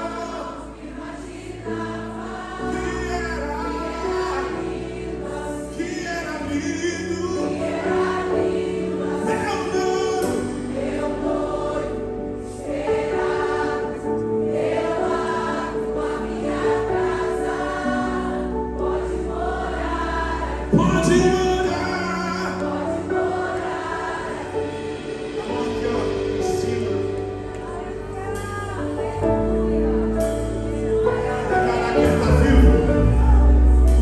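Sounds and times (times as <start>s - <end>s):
group singing: 0.0s - 34.0s
held keyboard chords: 0.0s - 34.0s.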